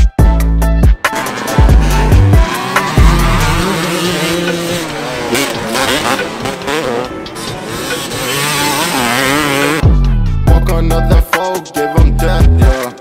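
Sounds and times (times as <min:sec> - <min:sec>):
deep bass notes from music: 0:00.0 - 0:04.4, 0:09.2 - 0:11.4, 0:12.0 - 0:12.8
dirt bike engines revving: 0:01.0 - 0:09.9.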